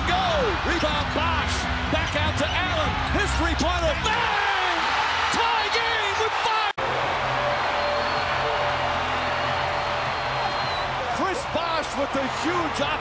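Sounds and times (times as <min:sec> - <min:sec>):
arena crowd roaring: 0:00.0 - 0:13.0.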